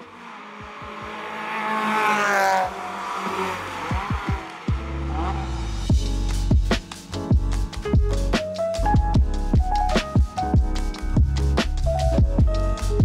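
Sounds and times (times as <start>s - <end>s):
race car accelerating past: 0.0s - 5.9s
electronic music with kick drums: 3.8s - 5.0s, 5.8s - 13.0s.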